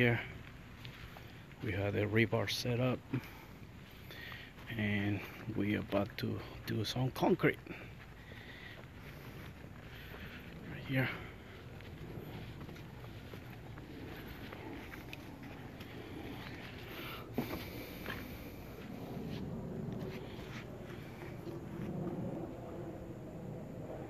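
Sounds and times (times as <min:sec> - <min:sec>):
outdoor background noise: 0:00.0 - 0:24.0.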